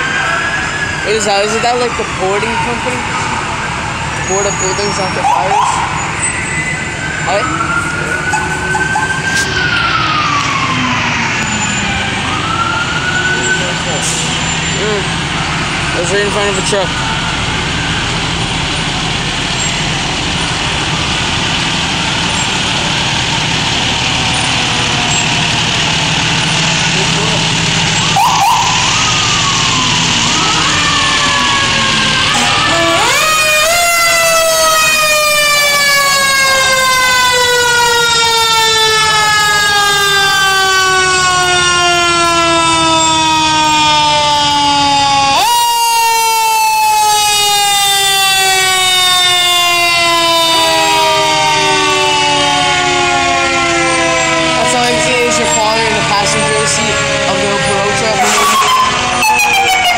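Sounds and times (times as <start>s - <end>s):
diesel engines running: 0.0s - 59.9s
fire truck siren: 0.0s - 59.9s
street noise: 0.0s - 59.9s.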